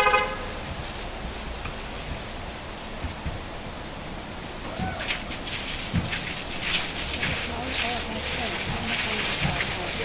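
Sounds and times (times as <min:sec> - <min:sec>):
car horn toot: 0:00.0 - 0:00.6
outdoor background noise: 0:00.0 - 0:10.0.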